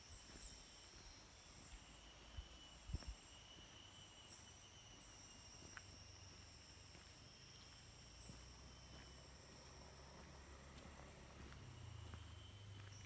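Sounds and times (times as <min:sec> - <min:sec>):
footsteps on dirt: 0:00.0 - 0:04.4, 0:05.0 - 0:13.0
high-pitched insect calls: 0:00.0 - 0:13.0.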